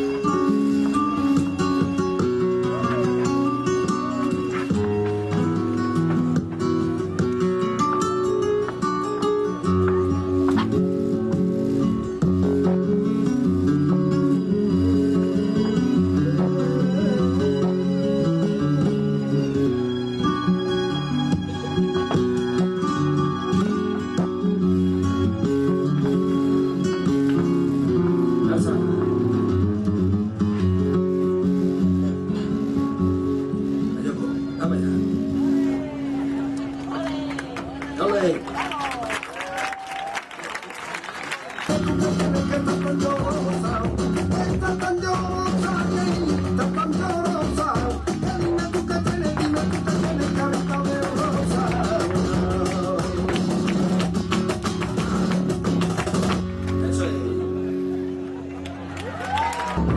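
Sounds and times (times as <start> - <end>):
flamenco acoustic guitar music: 0.0 - 40.2, 41.0 - 59.9
people clapping: 36.6 - 57.0, 58.4 - 59.9.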